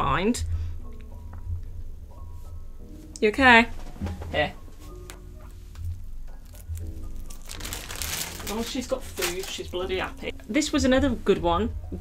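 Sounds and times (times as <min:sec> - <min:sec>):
light background music: 0:00.0 - 0:12.0
guinea pig chewing leaf: 0:05.9 - 0:10.3.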